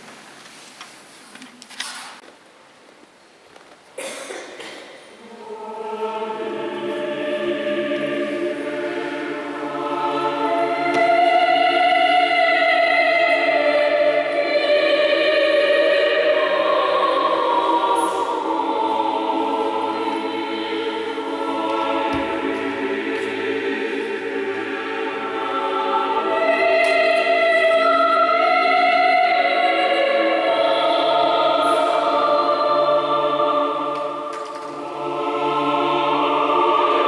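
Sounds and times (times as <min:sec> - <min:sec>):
church choir singing: 0:04.0 - 0:37.0.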